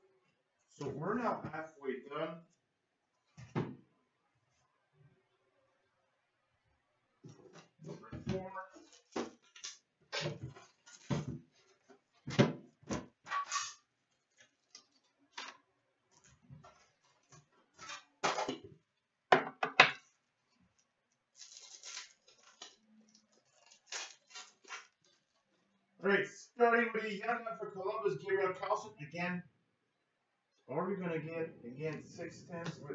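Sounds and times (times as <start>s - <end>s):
foil packs rustling: 10.5s - 11.9s, 21.3s - 25.5s
wrapper tearing open: 21.3s - 25.4s.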